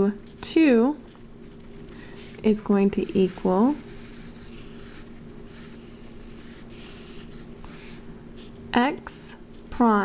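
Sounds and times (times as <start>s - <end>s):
steady low hum: 0.0s - 10.0s
marker scratching on paper: 2.6s - 8.0s.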